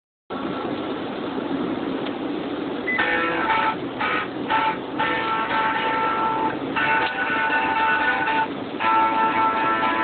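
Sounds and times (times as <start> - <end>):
road and engine noise in car: 0.3 - 10.0
music with sustained notes: 3.0 - 10.0.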